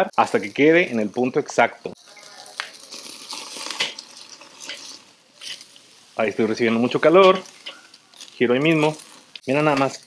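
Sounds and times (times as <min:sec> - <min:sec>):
steaks sizzling on grill: 0:00.0 - 0:10.0
tongs clicking on grill grate: 0:02.5 - 0:05.8, 0:06.4 - 0:10.0.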